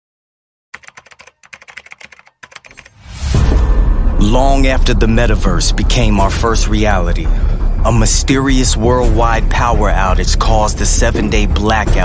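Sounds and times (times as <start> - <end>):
rapid keyboard typing clicks: 0.8 - 3.0
bass-heavy whoosh: 3.0 - 9.8.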